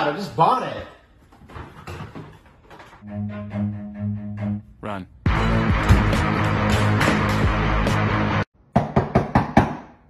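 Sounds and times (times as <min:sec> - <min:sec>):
background music: 0:03.0 - 0:08.5.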